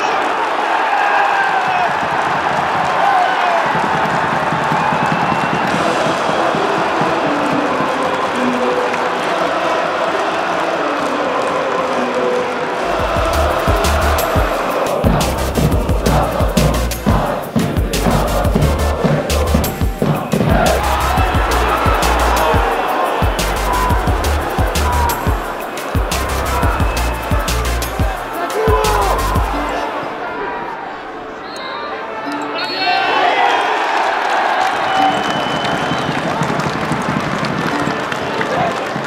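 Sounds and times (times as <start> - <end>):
stadium crowd roaring and singing: 0.0 - 39.0
music with pounding bass beat: 12.9 - 29.8.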